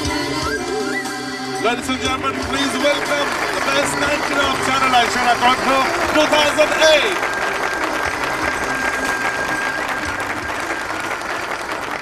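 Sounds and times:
audience applauding: 0:01.7 - 0:12.0.

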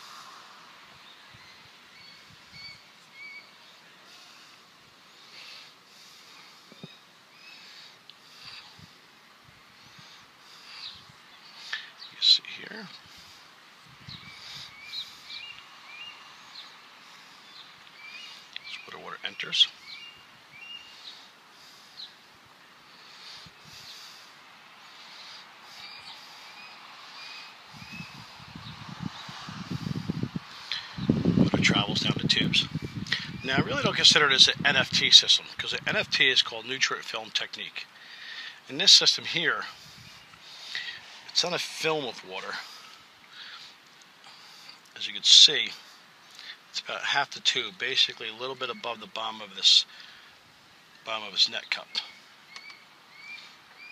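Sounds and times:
faint steady hiss: 0:00.0 - 0:53.9
small birds chirping: 0:00.0 - 0:53.9
high bird chirps: 0:52.5 - 0:53.9.

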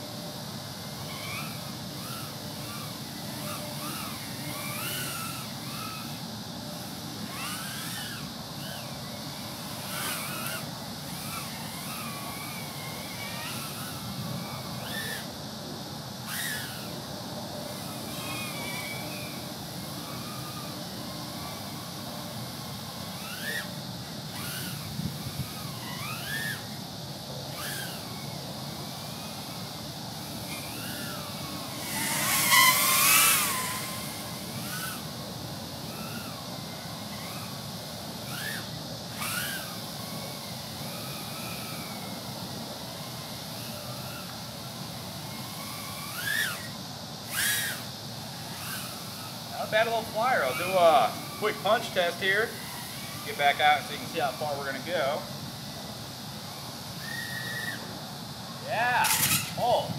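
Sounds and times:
quadcopter motors whining: 0:00.0 - 0:59.9.

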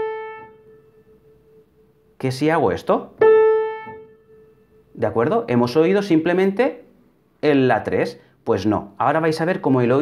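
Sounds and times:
piano note struck: 0:03.2 - 0:04.7.

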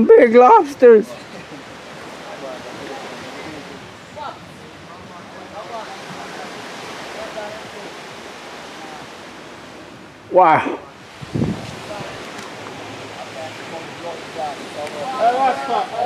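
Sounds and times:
faint distant voices: 0:00.0 - 0:09.8, 0:10.4 - 0:16.0
rushing outdoor background noise: 0:00.0 - 0:16.0.

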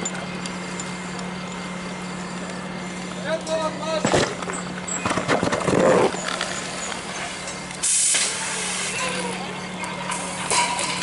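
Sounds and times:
steady low hum: 0:00.0 - 0:11.0
hiss of water spray: 0:07.8 - 0:09.0.

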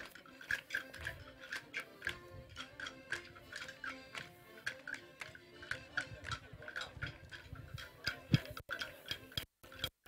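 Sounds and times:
drumstick strikes: 0:00.0 - 0:10.0.

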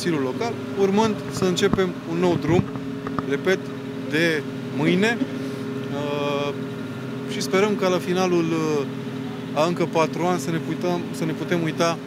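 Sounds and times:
engine humming: 0:00.4 - 0:09.6
man hesitation sound: 0:00.8 - 0:03.6.

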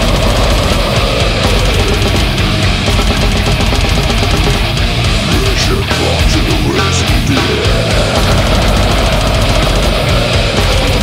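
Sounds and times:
death metal song: 0:00.0 - 0:11.0.

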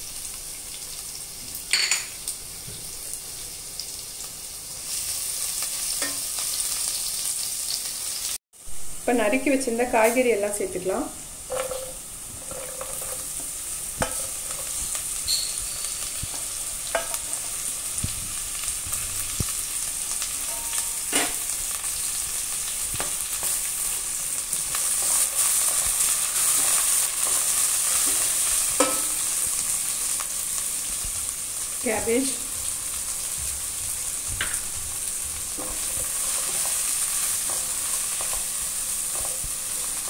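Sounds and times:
vegetables sizzling in hot oil: 0:00.0 - 0:40.0.

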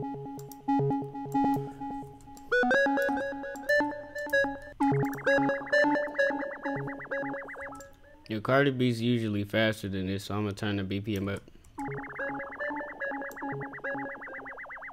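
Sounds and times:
synthesizer notes: 0:00.0 - 0:08.3, 0:11.8 - 0:14.9
fast-wavering repeating synth note: 0:02.5 - 0:08.2, 0:11.8 - 0:14.9.

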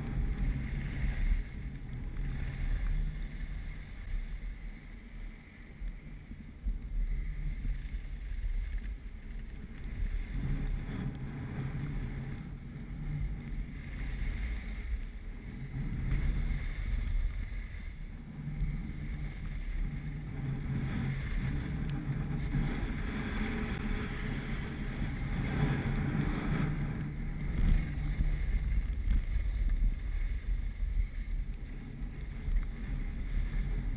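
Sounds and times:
skis sliding on snow: 0:00.0 - 0:33.9
wind buffeting microphone: 0:00.0 - 0:33.9.

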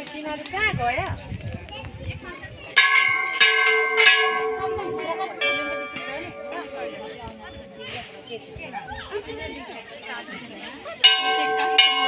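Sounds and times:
metal bell ringing: 0:02.8 - 0:07.0, 0:11.0 - 0:12.0.

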